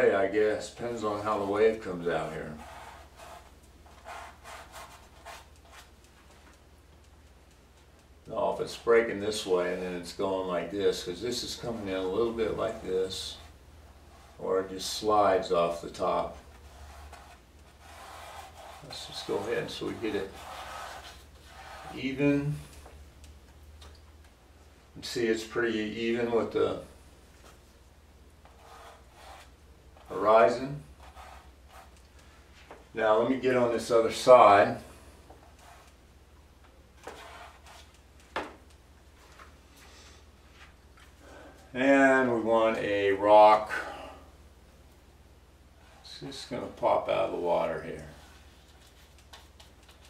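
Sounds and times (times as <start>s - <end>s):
steady low hum: 0.0s - 50.0s
brush strokes on canvas: 1.0s - 6.5s, 8.6s - 22.9s, 28.4s - 32.8s, 35.4s - 36.0s, 37.0s - 38.0s.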